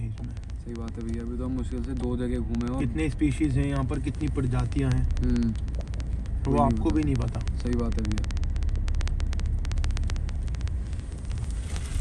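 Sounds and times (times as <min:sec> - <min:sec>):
car cabin road rumble: 0:00.0 - 0:12.0
sharp clicks: 0:00.0 - 0:12.0.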